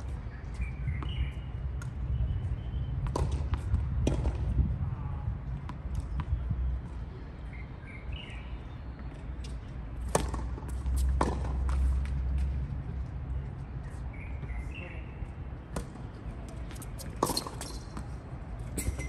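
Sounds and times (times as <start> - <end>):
tennis ball bouncing on hard court: 3.0 - 4.5, 10.0 - 12.5, 16.7 - 19.0
racket striking tennis ball: 10.0 - 11.8, 17.0 - 18.1.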